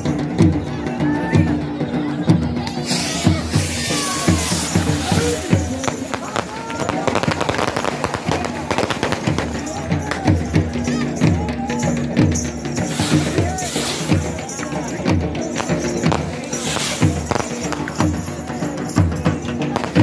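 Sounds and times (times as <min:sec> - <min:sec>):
crowd voices: 0:00.0 - 0:20.0
drumming with music: 0:00.0 - 0:20.0
firework rushing hiss: 0:02.8 - 0:09.6, 0:12.8 - 0:14.7, 0:15.5 - 0:18.3
fireworks crackling bangs: 0:02.8 - 0:10.7, 0:12.8 - 0:19.0, 0:19.6 - 0:20.0.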